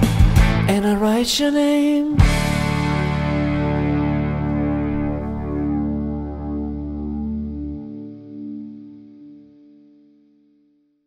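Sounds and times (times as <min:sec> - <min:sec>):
guitar chord ringing: 0:02.2 - 0:10.8.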